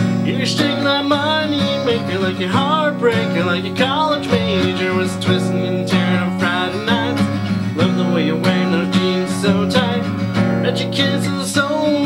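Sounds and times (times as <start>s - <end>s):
acoustic guitar strummed: 0.0s - 12.0s
man singing: 0.0s - 12.0s.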